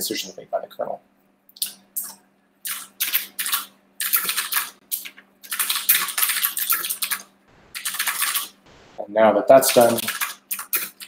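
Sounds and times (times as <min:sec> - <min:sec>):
faint steady hum: 0:06.6 - 0:09.4.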